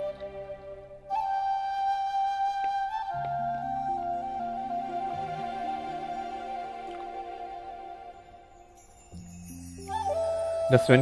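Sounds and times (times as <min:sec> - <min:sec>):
low accompanying notes: 0:00.0 - 0:11.0
slow flute melody: 0:00.0 - 0:11.0.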